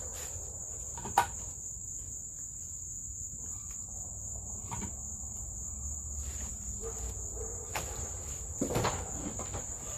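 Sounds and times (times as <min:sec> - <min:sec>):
insects trilling: 0:00.0 - 0:09.9.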